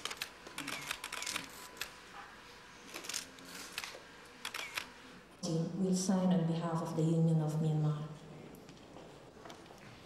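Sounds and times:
camera shutters clicking: 0.0s - 2.0s, 2.9s - 4.9s.

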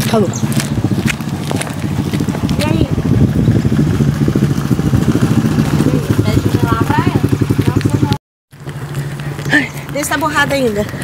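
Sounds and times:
quad bike engine running: 0.0s - 11.0s.

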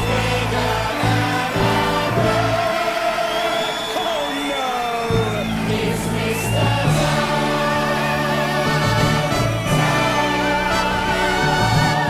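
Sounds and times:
orchestral musical theatre music: 0.0s - 12.0s.

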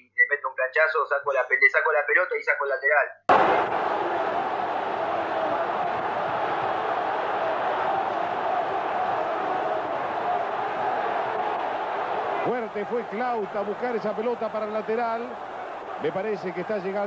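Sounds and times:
stadium crowd noise: 3.3s - 17.0s.

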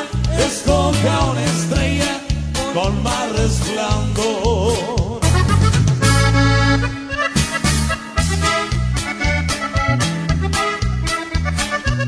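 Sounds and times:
accordion band music: 0.0s - 12.0s.

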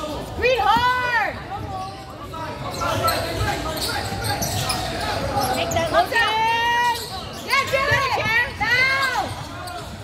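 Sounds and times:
chatter of large hall: 0.0s - 10.0s.

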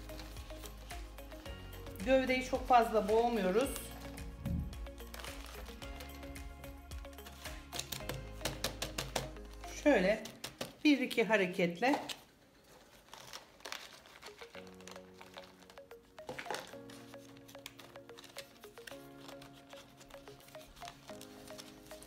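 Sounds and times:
soft background music chords: 0.0s - 10.7s, 14.2s - 22.0s.

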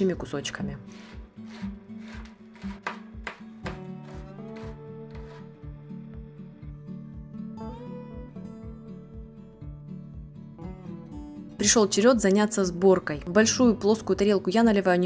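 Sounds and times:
background music with steady beat: 0.7s - 11.6s
knife chopping on plastic board: 1.0s - 5.4s.

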